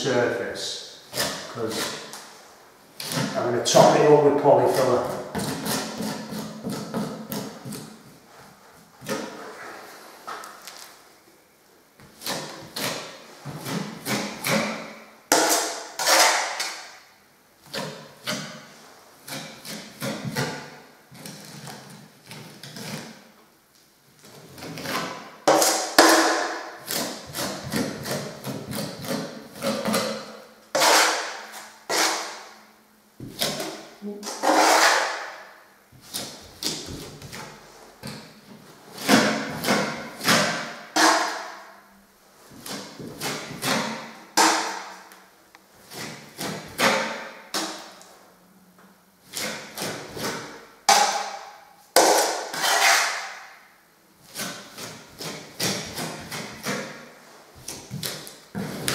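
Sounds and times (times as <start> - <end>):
trowel scraping plaster: 1.1 - 2.3, 3.0 - 10.0, 12.0 - 16.9, 17.6 - 23.2, 24.2 - 32.6, 33.3 - 35.4, 38.9 - 41.7, 42.6 - 44.9, 45.8 - 47.3, 49.3 - 50.6, 52.0 - 53.5, 54.2 - 57.0.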